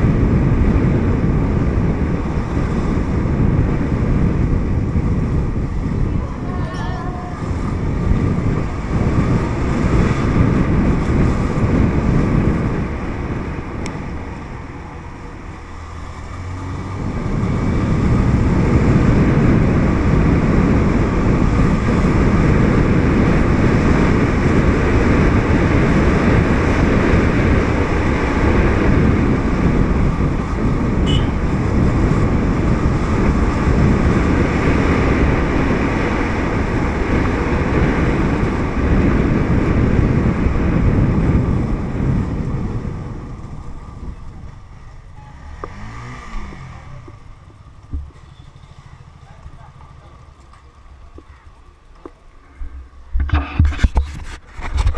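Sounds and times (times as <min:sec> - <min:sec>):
wind buffeting microphone: 0:00.0 - 0:54.9
motorbike engine running: 0:17.0 - 0:45.8.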